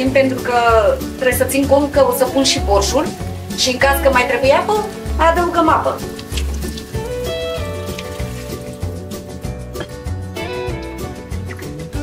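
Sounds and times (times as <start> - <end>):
instrumental music with steady beat: 0.9 - 12.0.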